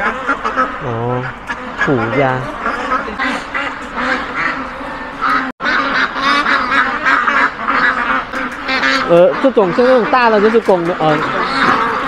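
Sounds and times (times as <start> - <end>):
ducks quacking: 0.0 - 12.0.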